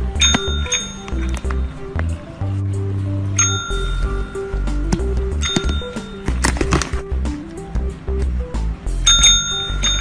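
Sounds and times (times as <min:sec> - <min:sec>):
background music: 0:00.0 - 0:10.0
desk call bell ding: 0:00.2 - 0:01.8, 0:03.4 - 0:06.3, 0:09.0 - 0:10.0.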